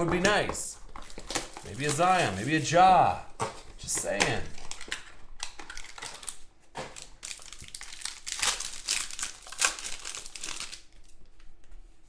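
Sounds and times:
cardboard and wrapper crinkling: 0.0s - 11.3s.

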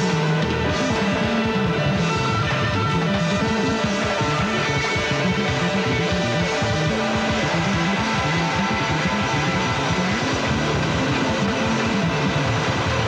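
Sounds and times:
bass line: 0.0s - 13.0s
drums: 0.0s - 13.0s
electric guitars: 0.0s - 13.0s.

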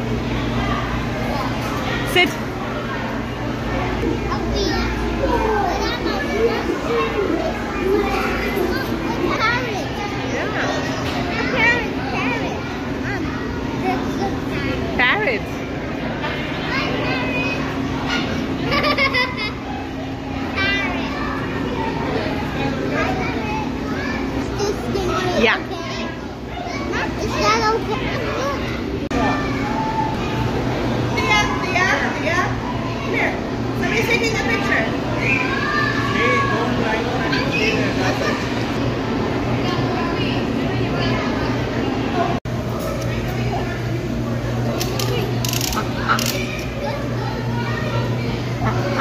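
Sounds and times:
busy hall background hum: 0.0s - 49.0s
children chattering and calling: 0.0s - 49.0s.

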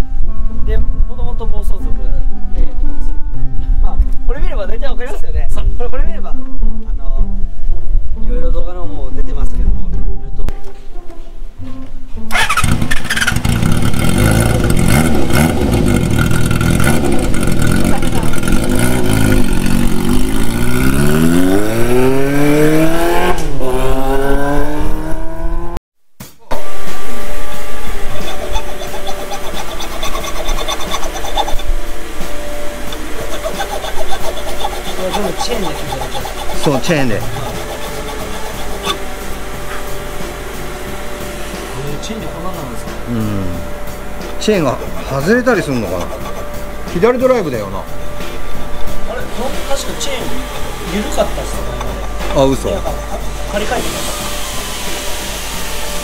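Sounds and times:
motorcycle engine revving: 12.3s - 25.8s, 26.6s - 41.7s.

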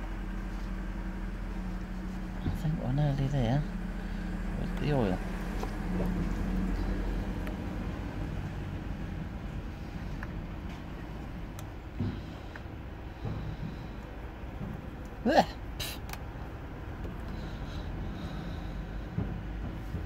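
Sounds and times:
low hum: 0.0s - 20.0s
low outdoor rumble: 0.0s - 20.0s.

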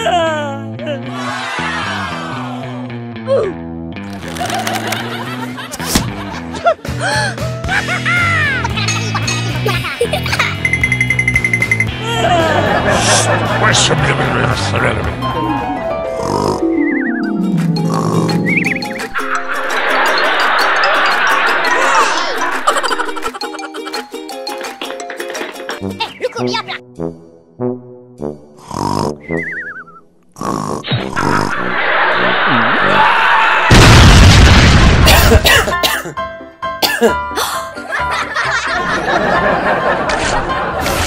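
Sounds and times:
background music: 0.0s - 30.0s, 35.0s - 41.0s
cartoon snoring whistle: 28.6s - 33.0s
loud burst with low rumble: 33.6s - 35.1s
person coughing: 35.1s - 36.2s, 36.8s - 37.7s.

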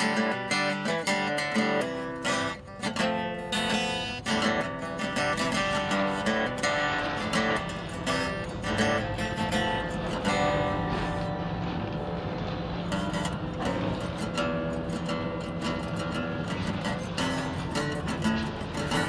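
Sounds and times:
acoustic guitar strummed and plucked: 0.0s - 19.0s.

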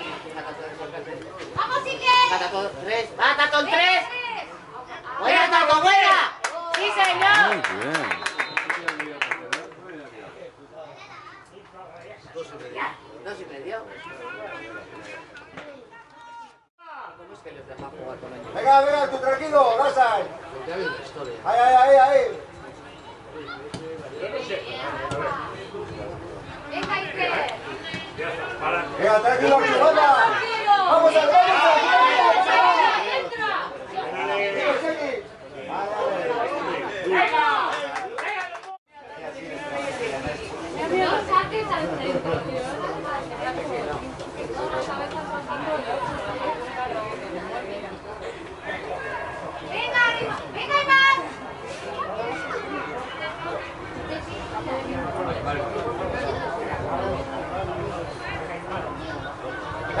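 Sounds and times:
indistinct chatter of voices: 0.0s - 60.0s.

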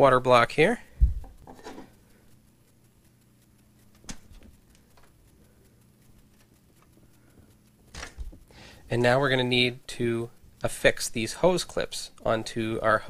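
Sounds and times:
low steady hum: 0.0s - 13.0s
sharp click: 1.1s - 8.6s
handling small parts: 1.2s - 2.0s.

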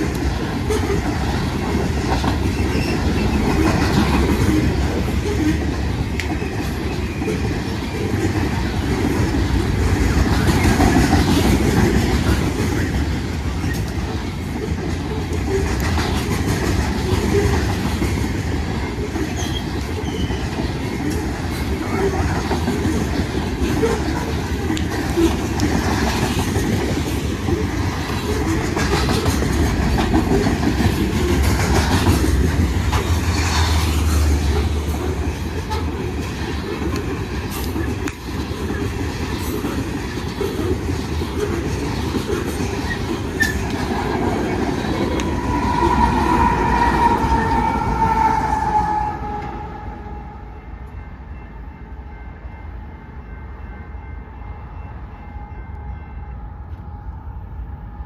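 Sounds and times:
train cars rumbling past: 0.0s - 58.0s.

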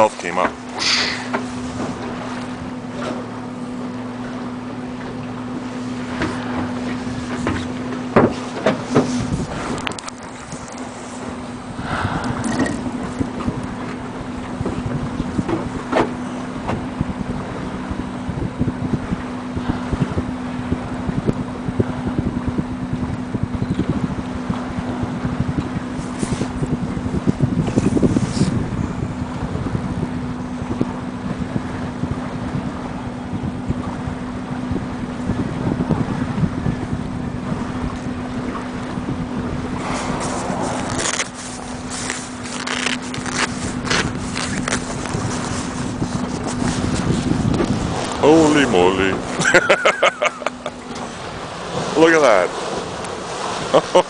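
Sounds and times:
outboard motor idling: 0.0s - 54.0s
wind rumbling on microphone: 0.0s - 54.0s.

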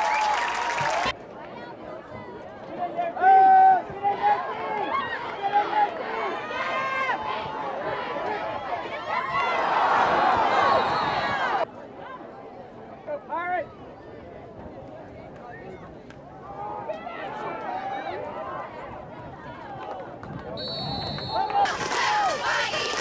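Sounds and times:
crowd shouting and cheering: 0.0s - 11.7s, 16.4s - 23.0s.

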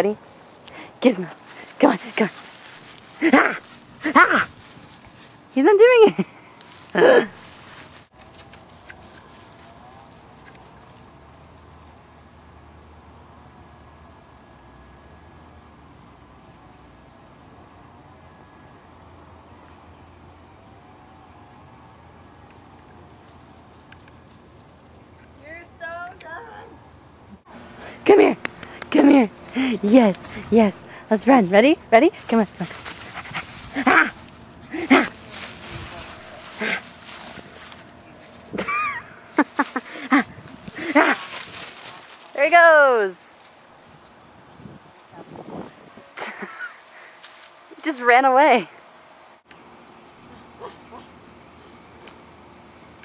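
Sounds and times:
low steady hum: 0.0s - 53.0s
woman speaking loudly: 1.0s - 2.4s, 3.2s - 4.5s, 5.6s - 6.2s, 25.4s - 26.8s, 28.0s - 32.8s, 42.3s - 43.2s, 47.8s - 48.7s
camera handling on grass: 2.4s - 5.5s, 32.6s - 38.6s
woman laughing: 5.8s - 7.4s, 33.7s - 35.2s, 38.5s - 41.2s, 46.2s - 46.8s.

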